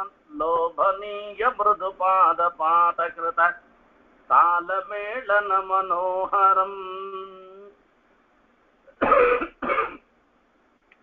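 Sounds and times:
man coughing: 8.9 - 10.1.

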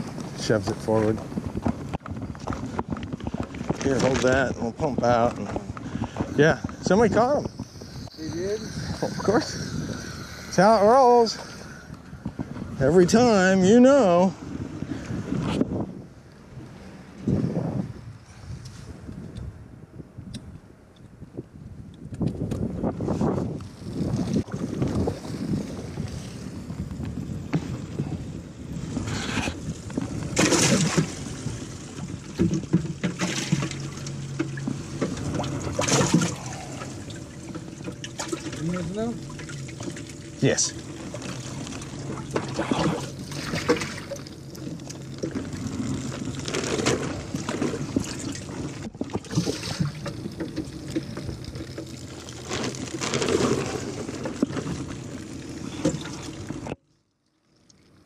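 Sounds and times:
water trickling and pouring: 30.5 - 58.0.

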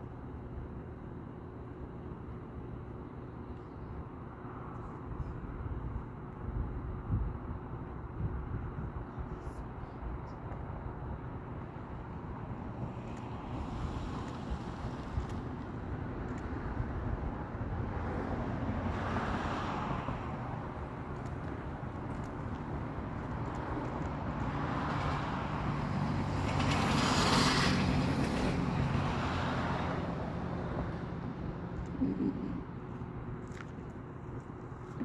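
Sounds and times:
vehicles passing: 0.0 - 35.0.

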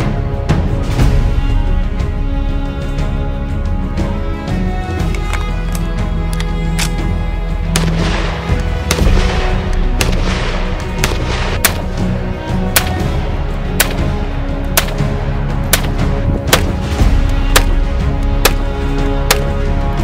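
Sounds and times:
background music: 0.0 - 20.0
rifle firing single shots: 7.7 - 12.0, 14.7 - 15.1, 15.7 - 16.9, 18.4 - 19.5.

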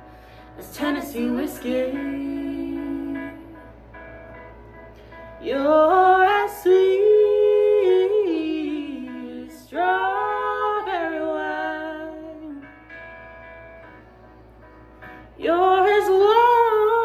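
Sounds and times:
backing track of held chords: 0.0 - 17.0.

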